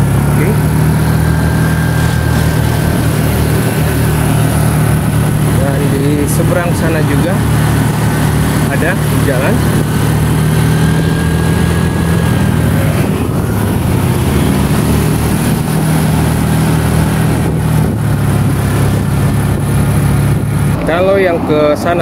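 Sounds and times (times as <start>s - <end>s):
motorcycle engine humming: 0.0s - 22.0s
road noise: 0.0s - 22.0s
wind noise: 0.0s - 22.0s.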